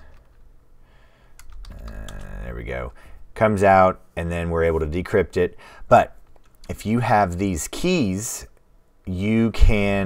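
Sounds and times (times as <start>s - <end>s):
computer keyboard keystrokes: 1.4s - 2.4s.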